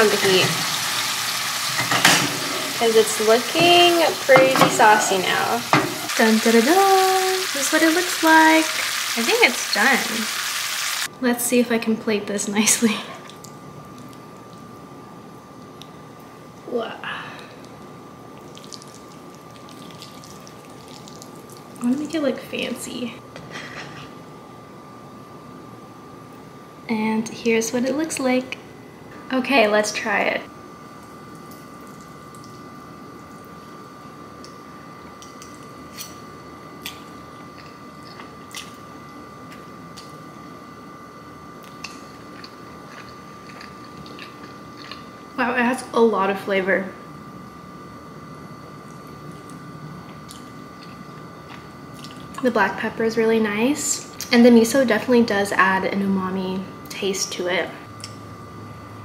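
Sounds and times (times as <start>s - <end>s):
faint sizzling pan: 0.0s - 11.1s.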